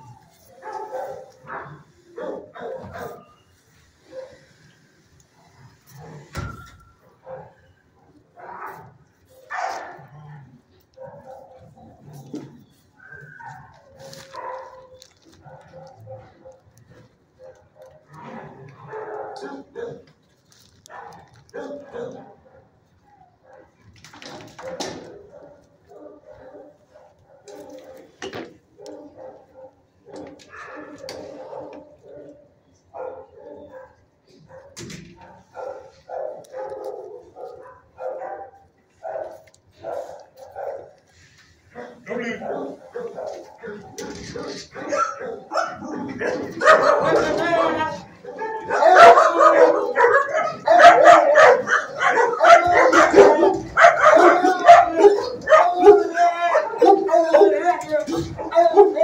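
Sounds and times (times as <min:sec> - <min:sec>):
dogs barking and howling: 0:00.0 - 0:03.4, 0:05.4 - 0:20.1, 0:20.9 - 0:23.8, 0:24.5 - 0:41.1, 0:41.8 - 0:59.0.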